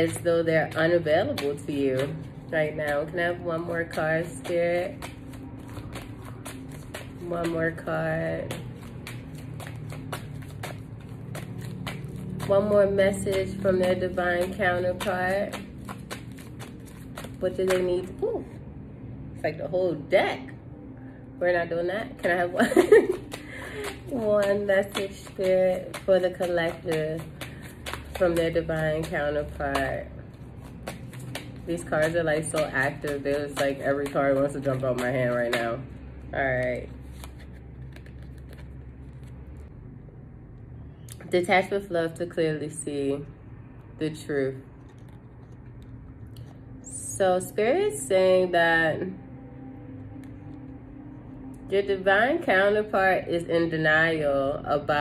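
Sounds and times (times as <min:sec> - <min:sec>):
cards being shuffled: 0:00.0 - 0:18.6, 0:22.1 - 0:39.7
steady low hum: 0:00.0 - 0:55.0.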